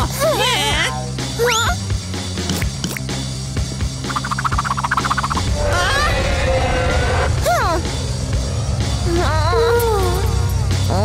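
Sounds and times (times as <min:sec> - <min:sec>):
cartoon music: 0:04.0 - 0:06.0.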